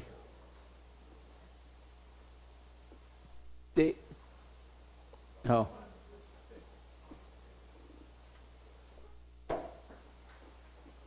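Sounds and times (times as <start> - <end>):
pa system hum: 0.0 - 11.0.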